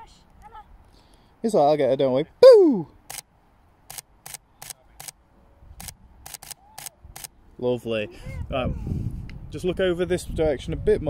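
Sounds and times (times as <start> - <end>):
camera shutter clicks: 3.1 - 3.3, 3.9 - 5.2, 5.8 - 7.3.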